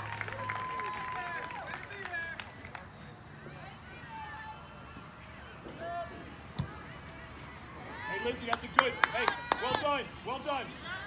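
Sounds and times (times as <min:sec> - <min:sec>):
soccer ball kick thud: 0:06.5 - 0:06.8.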